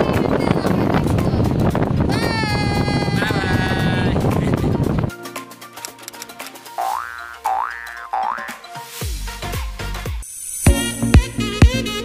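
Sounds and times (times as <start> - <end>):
cartoon boing sound effect: 6.8 - 8.6.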